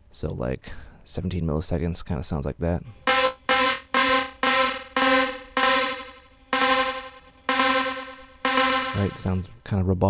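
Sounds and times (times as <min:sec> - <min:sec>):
snare drum hits with ringing delay: 0:03.1 - 0:09.4.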